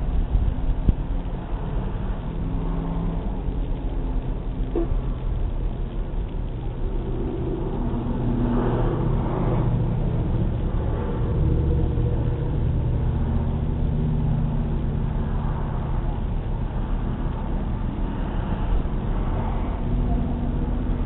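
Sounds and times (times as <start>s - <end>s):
cars driving past: 0.0s - 21.0s
low engine hum: 0.0s - 21.0s.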